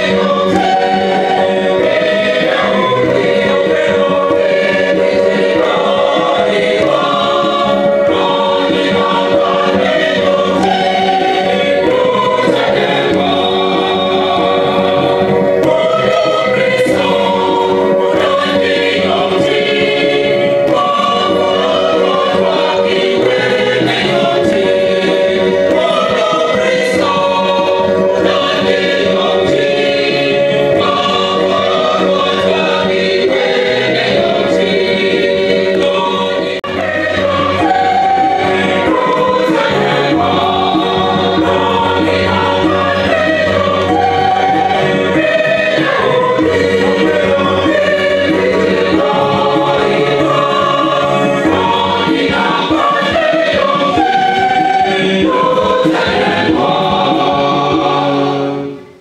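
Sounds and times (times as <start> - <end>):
choir singing: 0.0 - 59.0.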